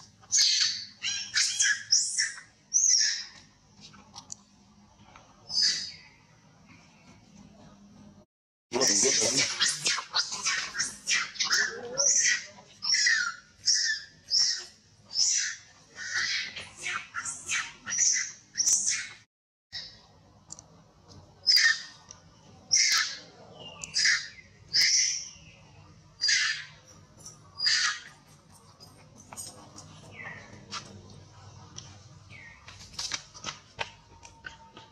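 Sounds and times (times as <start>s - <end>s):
baby monkey distress screams: 0.3s - 3.4s, 5.5s - 6.0s, 8.8s - 19.2s, 21.4s - 22.0s, 22.7s - 25.3s, 26.2s - 26.8s, 27.6s - 28.2s.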